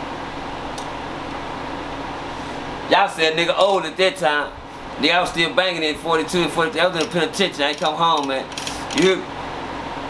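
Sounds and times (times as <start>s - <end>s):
mechanical room hum: 0.0s - 10.0s.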